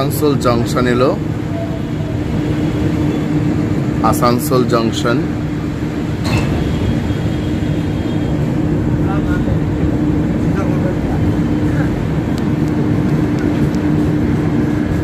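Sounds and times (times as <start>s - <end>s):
constant hum: 0.0s - 15.0s
train rumbling: 0.0s - 15.0s.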